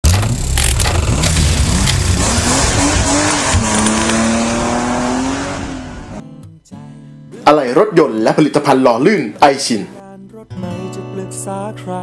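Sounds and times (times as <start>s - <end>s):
racing car engine: 0.0s - 6.2s.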